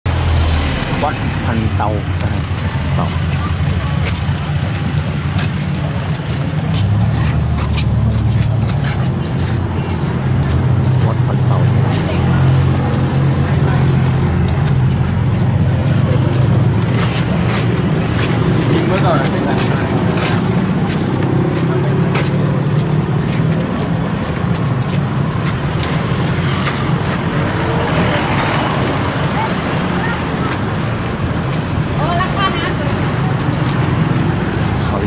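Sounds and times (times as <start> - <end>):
engine hum: 0.0 - 35.0
people's voices: 0.1 - 35.0.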